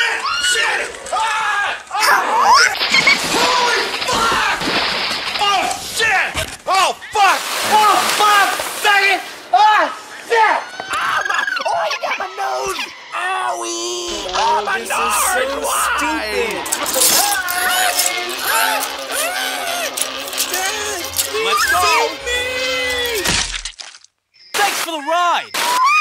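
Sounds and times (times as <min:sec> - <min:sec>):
water splash from bucket: 0:02.5 - 0:06.3, 0:07.2 - 0:09.6
cartoon duck voices squawking: 0:10.7 - 0:13.4, 0:17.4 - 0:23.3.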